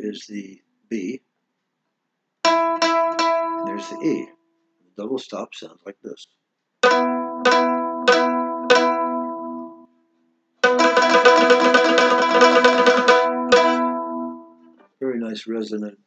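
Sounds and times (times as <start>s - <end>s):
mandolin double stop strokes: 2.5s - 4.2s, 6.8s - 9.6s, 10.6s - 14.4s
mandolin tremolo picking: 2.5s - 4.3s, 6.8s - 9.8s, 10.6s - 14.7s.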